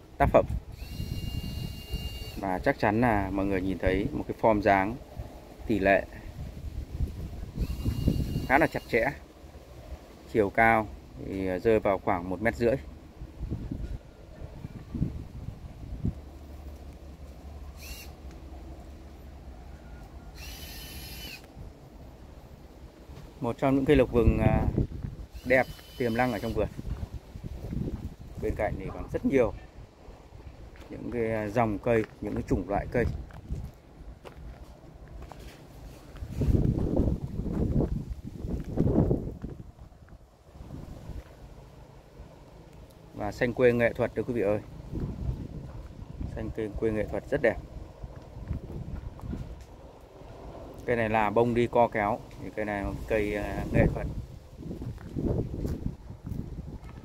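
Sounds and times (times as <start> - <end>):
wind on microphone: 0.0 - 2.7, 5.0 - 8.8, 13.2 - 16.4, 23.8 - 30.8, 32.4 - 33.8, 36.0 - 41.3, 44.8 - 49.7, 52.7 - 57.0
bird calling: 0.8 - 2.4, 7.6 - 9.1, 17.6 - 18.3, 19.7 - 21.5, 25.3 - 26.6.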